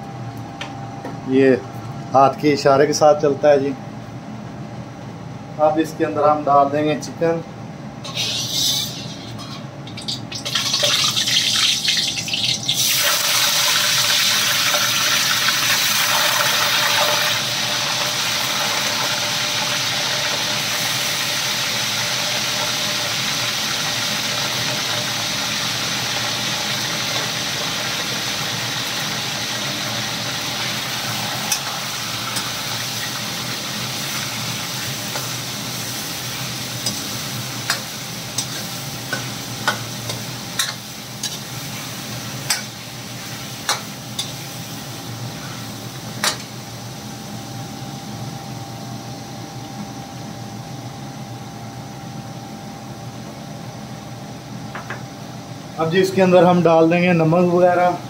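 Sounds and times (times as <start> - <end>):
chicken sizzling in hot oil: 8.0 - 47.5.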